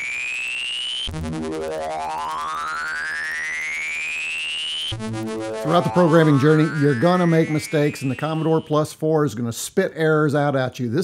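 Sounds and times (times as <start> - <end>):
synthesized tone sweeping upward: 0.0 - 8.9.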